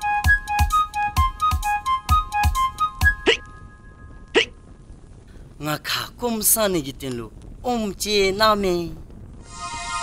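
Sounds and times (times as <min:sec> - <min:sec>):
boy hiccuping: 0:03.2 - 0:03.4, 0:04.4 - 0:04.6
boy speaking: 0:05.6 - 0:09.0.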